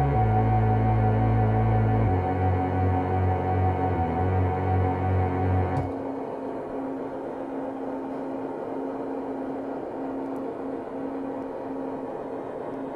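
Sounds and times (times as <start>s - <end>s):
low electronic drone: 0.0s - 7.0s.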